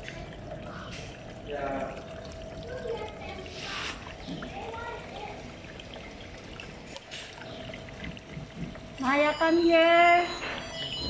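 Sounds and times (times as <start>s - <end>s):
water trickling in fish tank: 0.0s - 11.0s.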